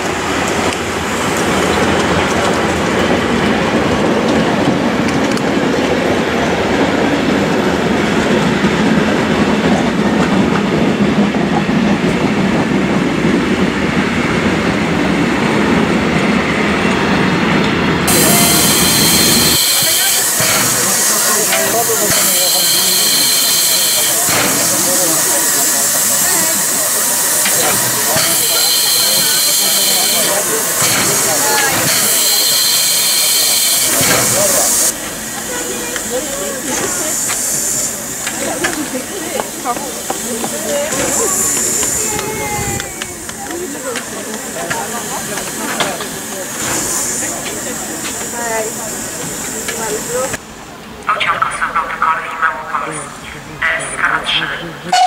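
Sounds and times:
steam locomotive hissing: 0:00.0 - 0:55.0
train carriages rumbling on rails: 0:00.0 - 0:55.0.

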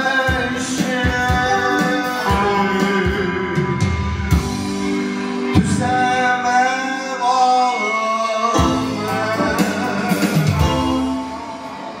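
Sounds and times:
man singing: 0:00.0 - 0:04.4, 0:05.5 - 0:12.0
band with keyboard and plucked strings: 0:00.0 - 0:12.0.

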